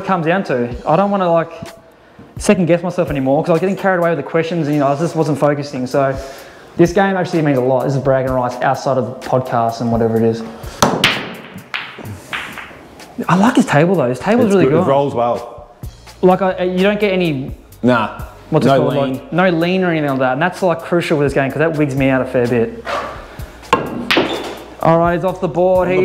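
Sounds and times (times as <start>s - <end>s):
pool balls knocking together: 10.8s - 13.1s, 23.6s - 24.7s.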